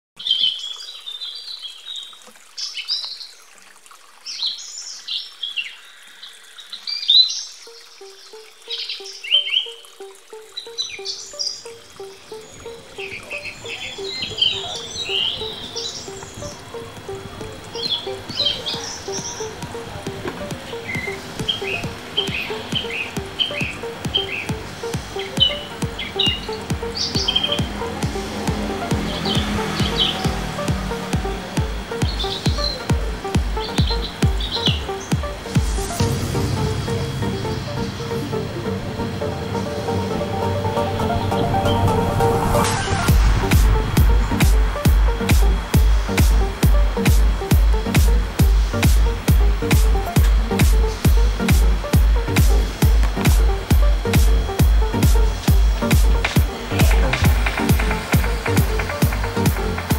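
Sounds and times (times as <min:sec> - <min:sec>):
small birds chirping: 0:04.2 - 0:36.1
background music with beat: 0:07.7 - 0:59.9.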